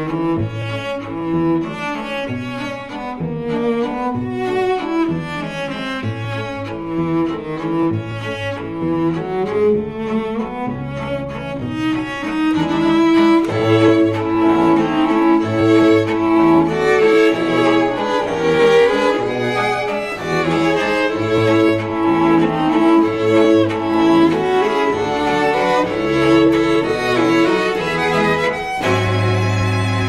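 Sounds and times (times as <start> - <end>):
bowed strings music: 0.0 - 30.0.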